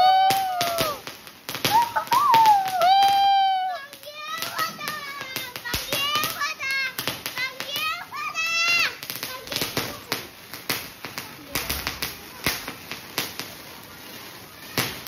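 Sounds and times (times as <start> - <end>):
children shrieking: 0.0 - 9.9, 14.2 - 15.0
firework pops and crackles: 0.0 - 15.0.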